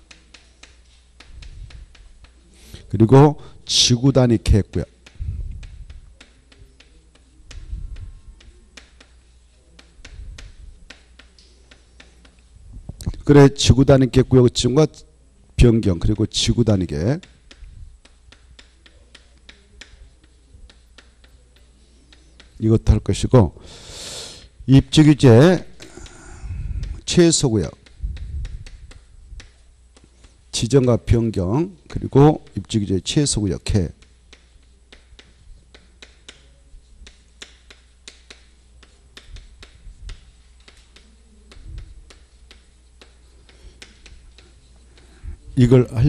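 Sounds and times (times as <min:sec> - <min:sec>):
chalk tapping and scraping on chalkboard: 0:00.0 - 0:12.5, 0:16.0 - 0:23.2, 0:26.8 - 0:46.0.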